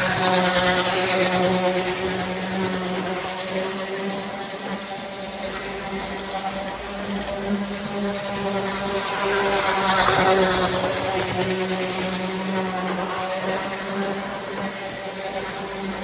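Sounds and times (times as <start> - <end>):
toy train motor hum: 0.0 - 16.0
train wheel rumble: 0.0 - 16.0.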